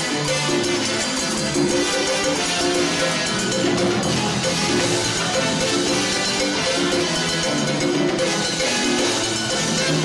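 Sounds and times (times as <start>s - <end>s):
salsa band playing: 0.0s - 10.0s.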